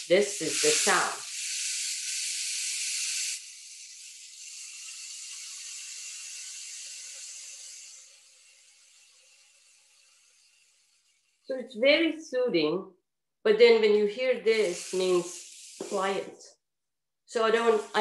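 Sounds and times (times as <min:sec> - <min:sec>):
rainmaker beads trickling: 0:00.3 - 0:11.5.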